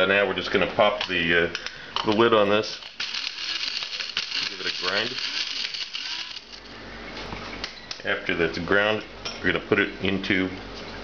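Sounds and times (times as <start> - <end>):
coffee mill grinding spices: 2.8 - 6.7.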